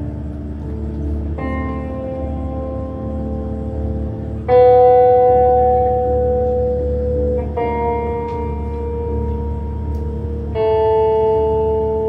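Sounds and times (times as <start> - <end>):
held electric guitar note: 0.0 - 12.0
low bass rumble: 0.0 - 12.0.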